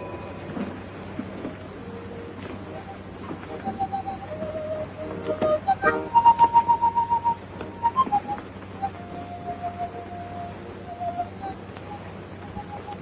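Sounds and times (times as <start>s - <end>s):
faint steady hum: 0.0s - 13.0s
high whistle-like notes: 2.7s - 13.0s.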